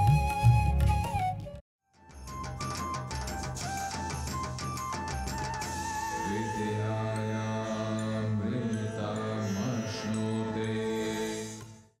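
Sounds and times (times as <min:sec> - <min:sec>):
deep chanted tone: 0:06.1 - 0:11.6.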